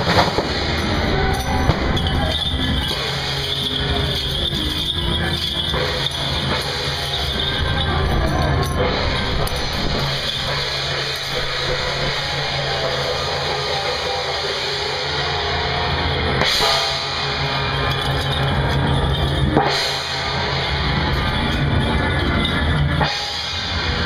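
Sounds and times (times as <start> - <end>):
cymbals clashing: 0.0 - 24.0
steady low drone: 0.0 - 24.0.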